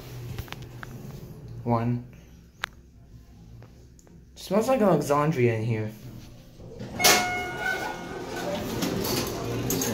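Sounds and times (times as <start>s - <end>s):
elevator doors sliding open: 6.5s - 9.9s
elevator clunk: 6.6s - 9.9s
brief ringing tone: 7.0s - 8.1s.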